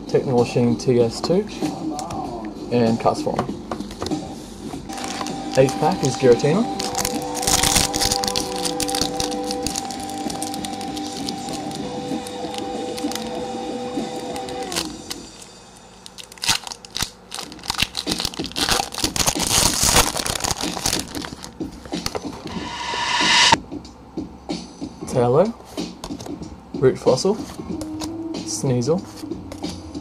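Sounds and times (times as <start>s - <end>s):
background music: 1.8s - 15.0s
foil wrapper crinkling and tearing: 4.9s - 5.7s, 6.8s - 11.8s, 12.4s - 13.3s, 16.0s - 21.6s.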